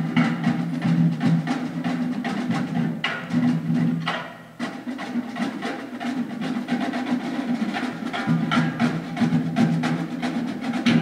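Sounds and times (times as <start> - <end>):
drums beating steady rhythm: 0.0 - 11.0.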